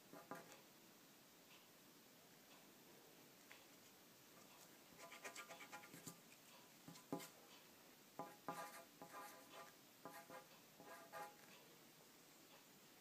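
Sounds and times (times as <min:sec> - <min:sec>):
pencil writing on paper: 0:05.0 - 0:06.1, 0:08.2 - 0:11.4.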